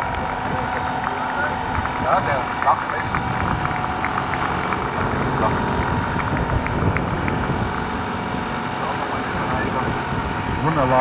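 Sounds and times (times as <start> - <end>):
high whine: 0.0 - 11.0
model helicopter rotors chopping: 0.0 - 11.0.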